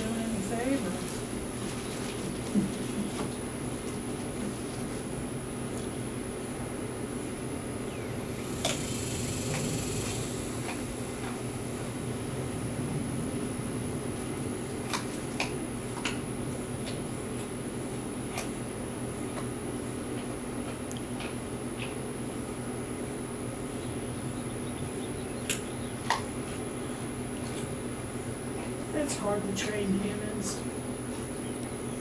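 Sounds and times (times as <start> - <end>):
low mechanical hum: 0.0 - 32.0.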